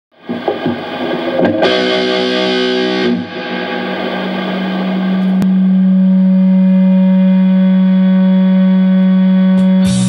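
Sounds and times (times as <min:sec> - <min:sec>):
distorted electric guitar note: 0:00.2 - 0:10.0.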